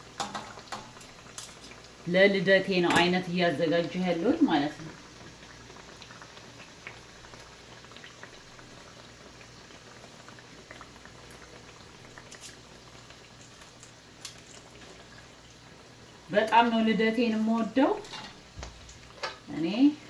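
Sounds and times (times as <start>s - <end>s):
pastries deep-frying in oil: 0.0s - 20.0s.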